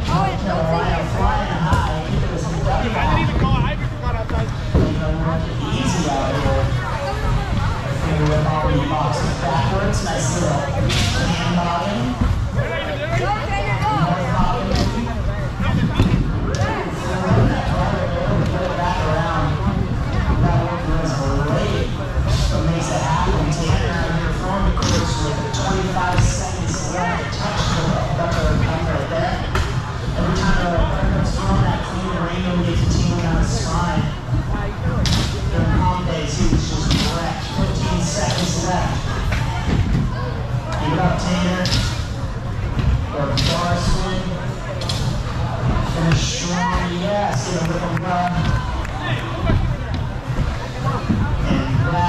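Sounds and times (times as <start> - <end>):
many voices talking in a hall: 0.0 - 52.0.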